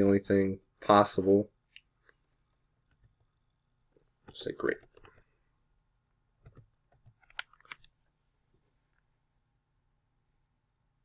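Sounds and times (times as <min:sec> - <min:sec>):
keyboard clicks: 0:04.2 - 0:05.3, 0:06.4 - 0:07.9.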